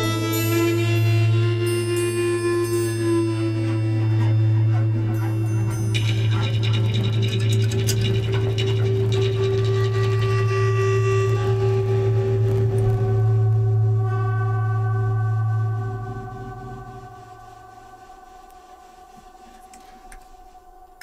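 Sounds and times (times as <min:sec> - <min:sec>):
large gong shimmering: 0:00.0 - 0:12.0
low drone with held tones: 0:00.0 - 0:21.0.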